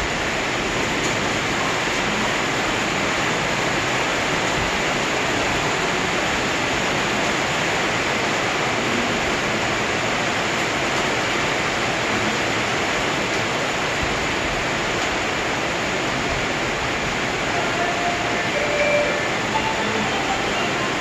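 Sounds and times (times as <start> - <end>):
steady rain hiss: 0.0 - 21.0.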